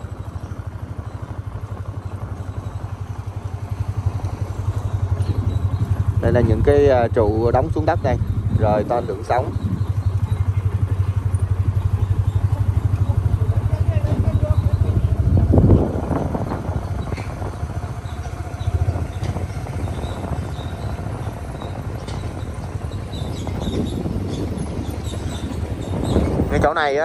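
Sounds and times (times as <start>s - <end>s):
motorbike engine rumble: 0.0s - 27.0s
road noise: 0.0s - 27.0s.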